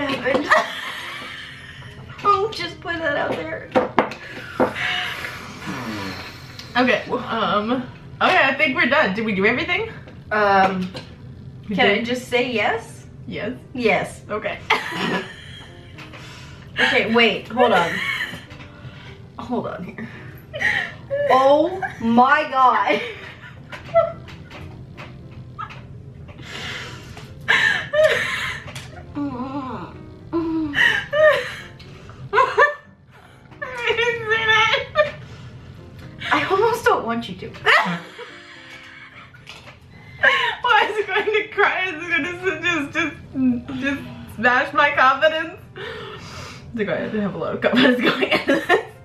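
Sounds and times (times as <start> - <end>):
women laughing: 0.2 - 2.0, 14.7 - 15.8, 17.6 - 18.6, 27.5 - 28.8, 30.8 - 31.7, 32.3 - 32.9, 37.7 - 39.5, 47.7 - 49.0
breathy vocal sounds: 4.4 - 6.8.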